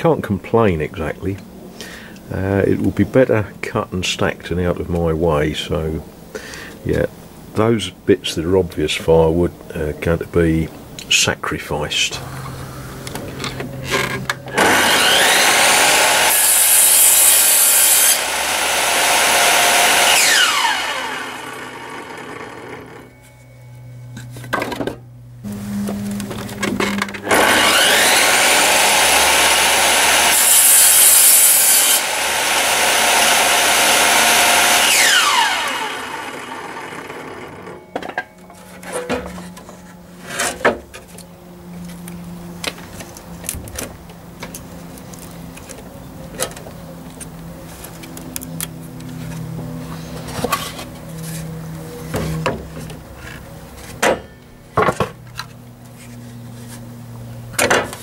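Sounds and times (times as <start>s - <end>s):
table saw cutting wood: 12.2s - 23.1s, 25.4s - 40.8s.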